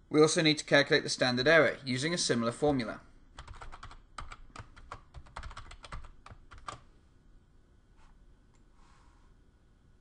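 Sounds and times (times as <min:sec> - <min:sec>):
typing on computer keyboard: 0:03.4 - 0:06.8.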